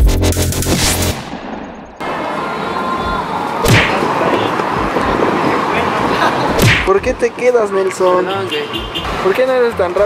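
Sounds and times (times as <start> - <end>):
electronic music: 0.0 - 1.2
outdoor street noise: 0.0 - 10.0.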